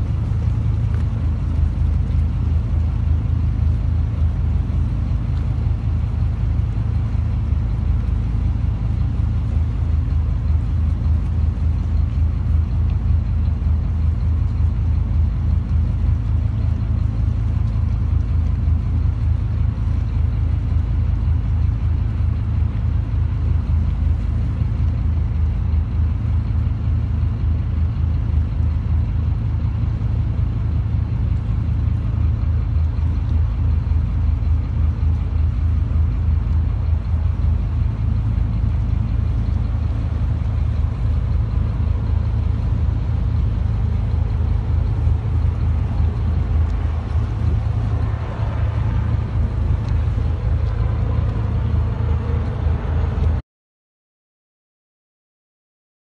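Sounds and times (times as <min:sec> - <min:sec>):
boat engine droning: 0:00.0 - 0:53.4.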